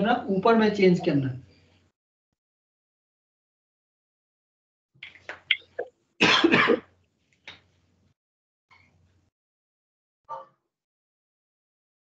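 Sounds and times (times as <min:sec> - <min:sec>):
person coughing: 0:06.2 - 0:06.8.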